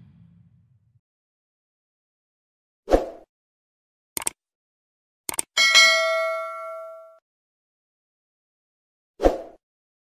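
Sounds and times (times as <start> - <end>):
mouse clicks: 5.3 - 5.5
notification bell ding: 5.6 - 7.2.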